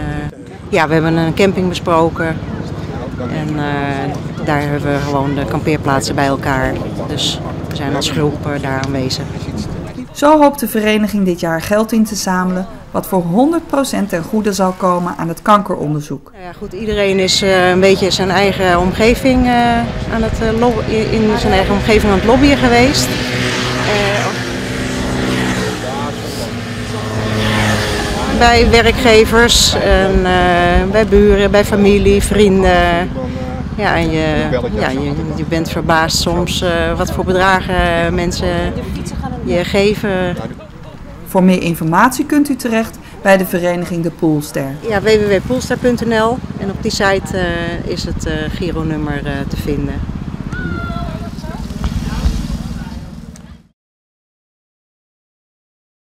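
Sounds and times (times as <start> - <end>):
steady low rumble: 16.4 - 53.7
engine drone: 16.6 - 53.7.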